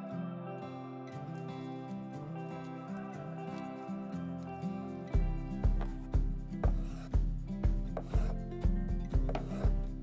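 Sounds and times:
background music with steady beat: 1.1 - 10.0.

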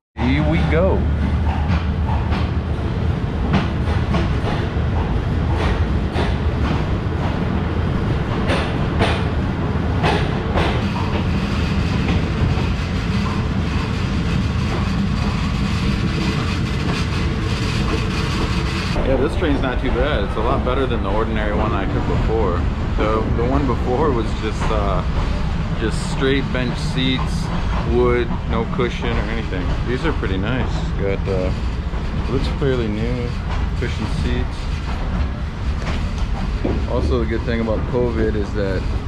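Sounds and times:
train rumble: 0.2 - 39.0
wheels clacking over rail joints: 0.4 - 39.0.

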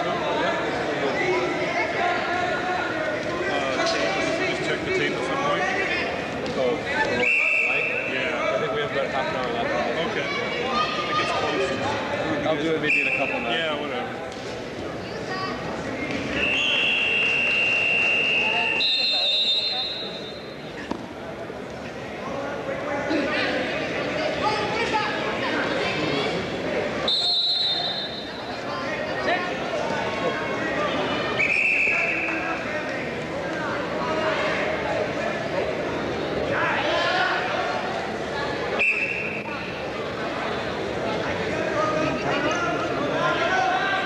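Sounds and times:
whistle blasts: 7.2 - 8.1, 16.3 - 20.4, 27.1 - 28.4, 31.4 - 32.4, 38.8 - 39.5.

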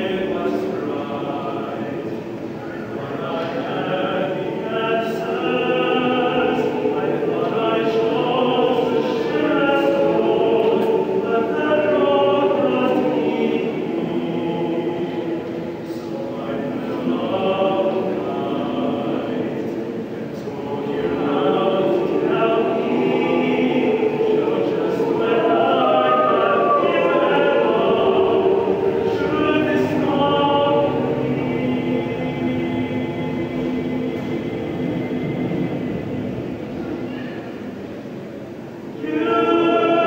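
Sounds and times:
mixed choir singing: 0.0 - 40.0.

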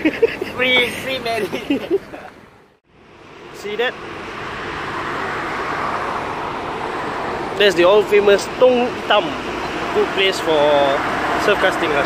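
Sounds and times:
car passing close by: 3.0 - 12.0.

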